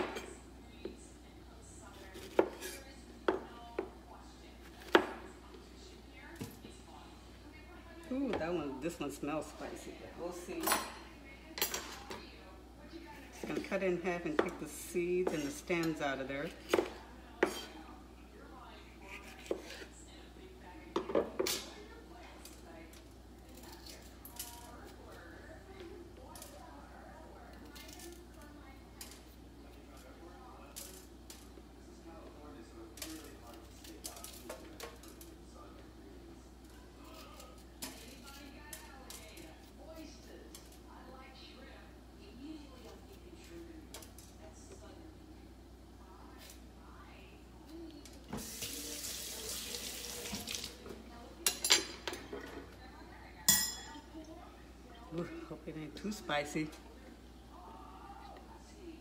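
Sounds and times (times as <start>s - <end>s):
knife scraping peppers: 1.9s - 2.9s, 19.0s - 20.0s
kitchen tap running: 48.3s - 50.9s.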